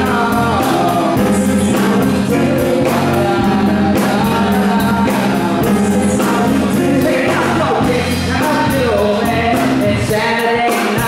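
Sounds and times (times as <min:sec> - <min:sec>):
drum kit beat: 0:00.0 - 0:11.0
live band playing: 0:00.0 - 0:11.0
person singing: 0:00.0 - 0:11.0.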